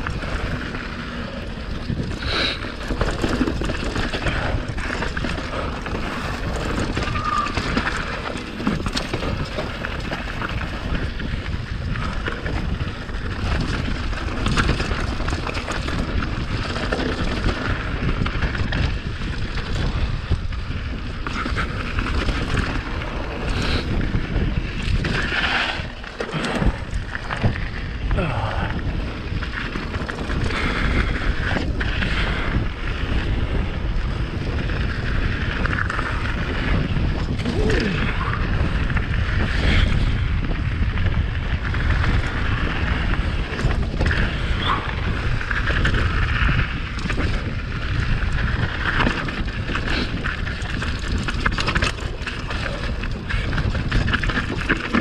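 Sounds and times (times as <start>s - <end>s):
bike tyres rolling and rattling: 0.0s - 55.0s
clicks and knocks from rough ground: 0.0s - 55.0s
wind rumble on microphone: 0.0s - 55.0s.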